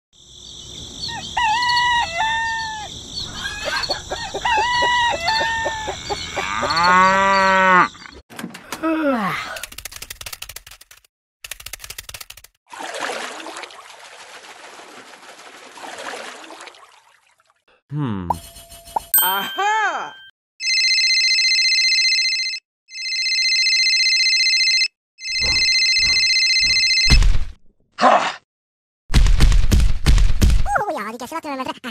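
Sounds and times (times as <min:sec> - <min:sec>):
rooster crowing: 0:01.0 - 0:07.4
clucking calls: 0:01.1 - 0:06.8
telephone electronic trilling ring: 0:20.1 - 0:27.2.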